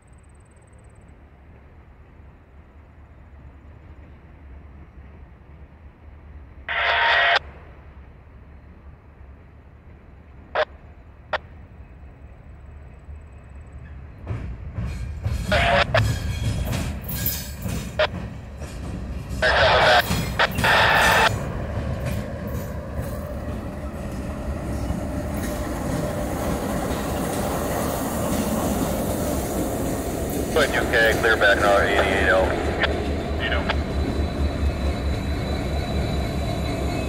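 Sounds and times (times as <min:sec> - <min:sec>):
diesel locomotive engine rumble: 0:00.0 - 0:37.0.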